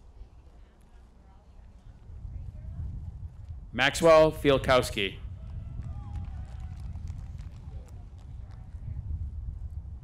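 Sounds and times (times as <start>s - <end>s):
faint distant voices: 0.0s - 3.4s
steady low rumble: 1.8s - 10.0s.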